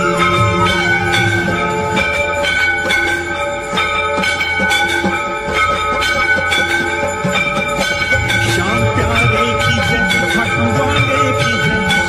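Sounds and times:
temple bells ringing: 0.0 - 12.0.

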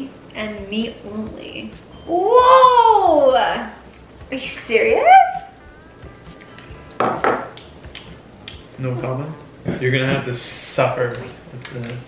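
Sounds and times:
glass cup set down on table: 7.0 - 7.5.

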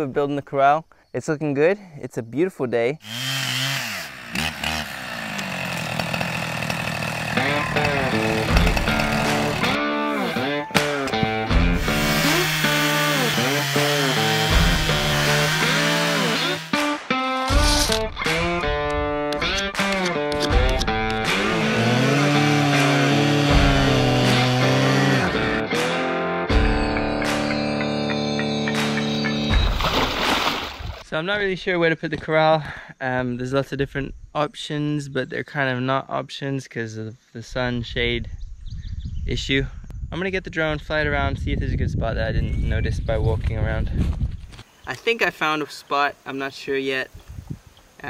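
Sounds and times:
chainsaw cutting logs: 3.0 - 18.5, 19.4 - 25.6
background music: 7.3 - 30.3.

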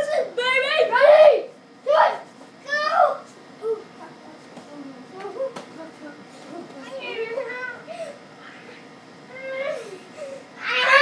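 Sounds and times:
children shouting and crying: 9.3 - 11.0.

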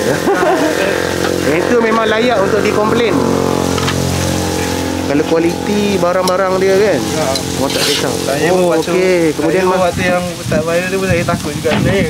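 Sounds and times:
steady mechanical hum: 0.0 - 11.0
food sizzling on griddle: 3.5 - 12.0.

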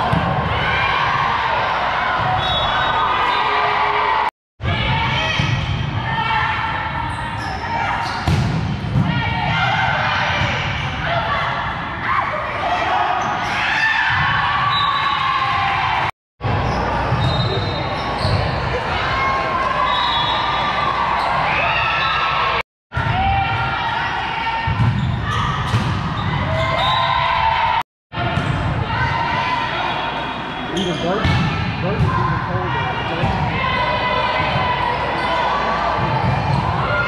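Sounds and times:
chatter of spectators: 16.4 - 22.6, 28.2 - 37.0
players calling: 29.8 - 35.8.

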